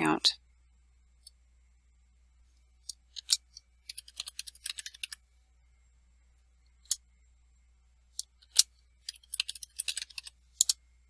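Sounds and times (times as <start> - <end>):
computer keyboard keystrokes: 3.9 - 5.2, 8.5 - 10.8.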